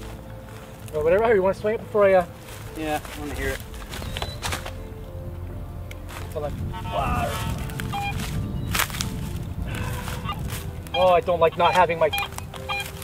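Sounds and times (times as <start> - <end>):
wind rumble on microphone: 3.3 - 12.8
metal detector beeps: 4.0 - 4.5, 6.8 - 8.8, 10.2 - 13.0.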